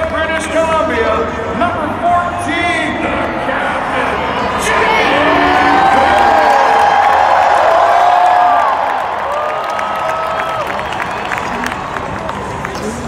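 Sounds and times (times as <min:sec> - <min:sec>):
stadium crowd cheering and shouting: 0:00.0 - 0:13.0.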